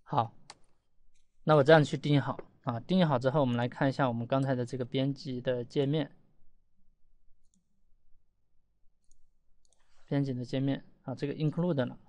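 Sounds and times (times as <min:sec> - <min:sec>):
computer mouse click: 0:09.0 - 0:10.0.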